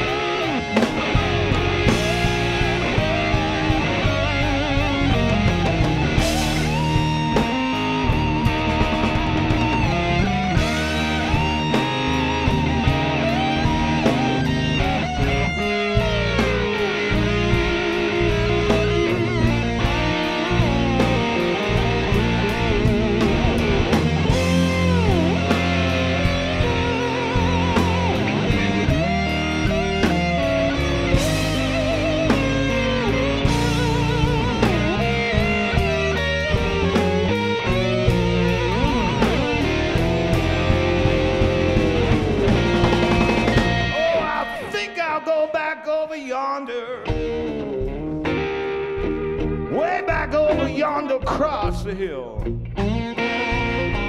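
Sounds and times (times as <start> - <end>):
electric bass: 0.0 - 45.0, 47.0 - 54.0
drum kit: 0.0 - 45.5, 47.0 - 54.0
electric guitar solo: 0.0 - 54.0.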